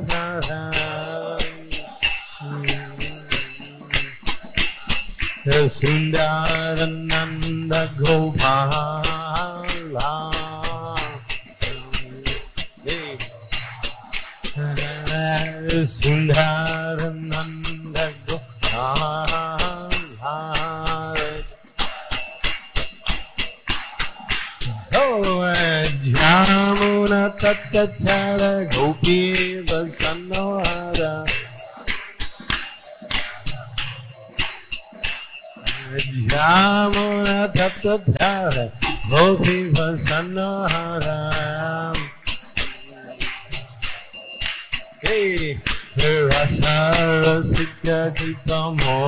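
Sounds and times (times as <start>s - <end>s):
brass hand cymbals: 0.0s - 49.0s
man singing a chant: 0.0s - 49.0s.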